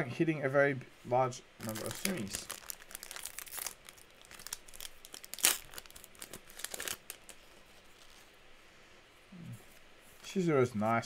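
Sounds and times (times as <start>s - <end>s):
booster pack wrapper tearing: 1.6s - 8.3s
wrapper crinkling and rustling: 1.6s - 8.4s.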